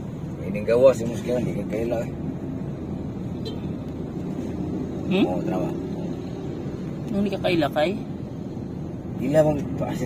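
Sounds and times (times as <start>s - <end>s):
road noise: 0.0s - 10.0s
vehicle engine rumble: 0.0s - 10.0s.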